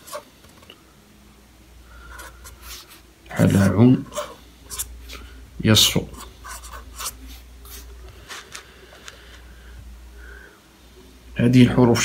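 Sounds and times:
pen scratching on paper: 0.0 - 0.2, 2.1 - 4.9, 6.1 - 7.8.

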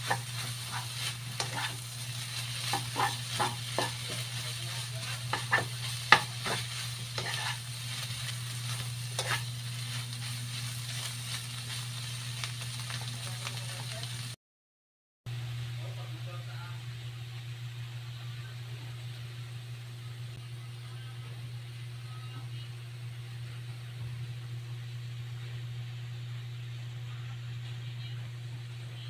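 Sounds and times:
spatula stirring and scraping: 0.0 - 13.6
steady low hum: 0.0 - 14.3, 15.3 - 29.0
food sizzling in a wok: 0.0 - 14.4
spatula knocking on pan: 2.6 - 4.2, 5.3 - 7.5.

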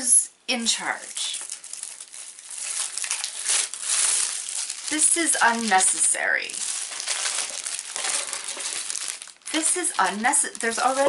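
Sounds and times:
plastic wrap crinkling: 0.8 - 11.0.

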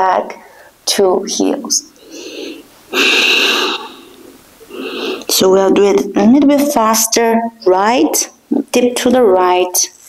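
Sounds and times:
woman breathing: 0.4 - 0.8, 2.0 - 5.3.

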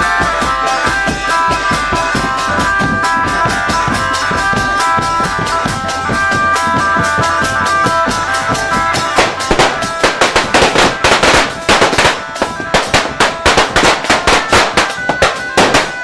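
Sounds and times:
marching band melody instruments: 0.0 - 16.0
marching drums and crash cymbals: 0.0 - 16.0.

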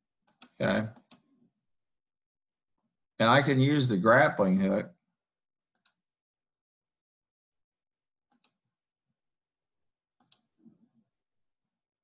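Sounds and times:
computer mouse clicks: 0.3 - 1.4, 5.8 - 6.0, 8.3 - 8.7, 10.2 - 10.8.

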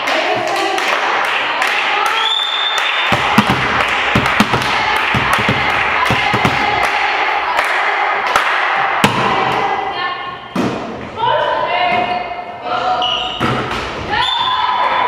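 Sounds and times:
volleyballs bouncing on wooden floor: 3.0 - 7.0, 9.0 - 9.7
echoing chatter of girls: 4.6 - 10.5.

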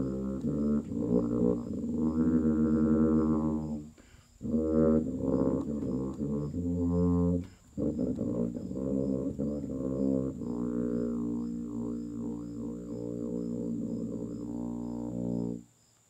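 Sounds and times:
tuba playing low notes: 0.0 - 15.7.

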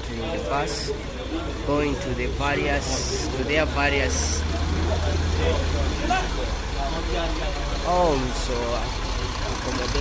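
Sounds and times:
bus engine idling: 0.0 - 10.0
people talking: 0.0 - 10.0.

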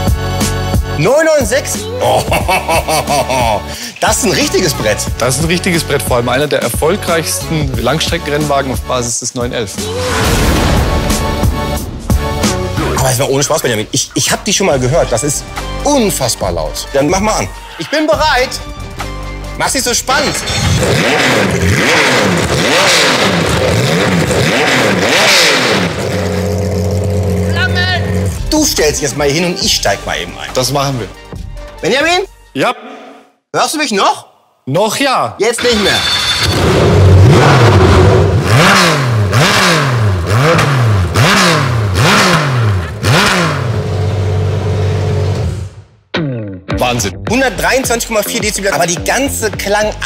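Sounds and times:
race car engine revving: 20.4 - 28.5, 35.7 - 45.7.

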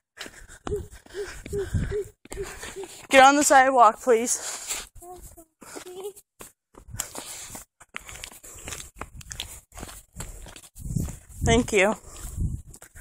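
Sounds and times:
wind buffeting microphone: 0.6 - 2.8, 8.9 - 13.0.

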